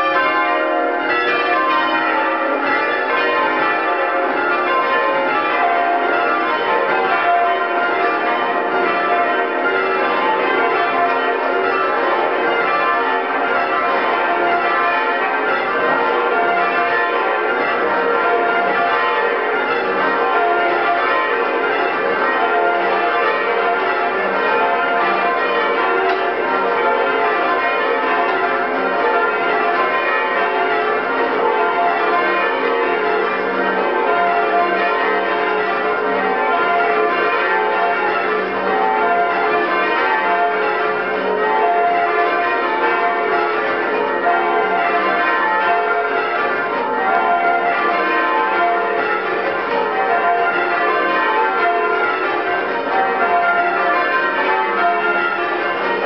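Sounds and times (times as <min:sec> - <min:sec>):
church bells change ringing: 0:00.0 - 0:56.0.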